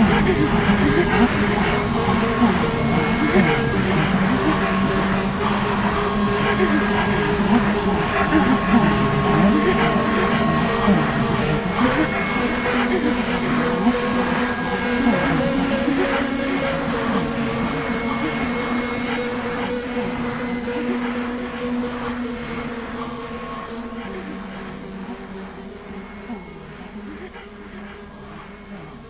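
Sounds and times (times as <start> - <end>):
dark electronic drone music: 0.0 - 29.0.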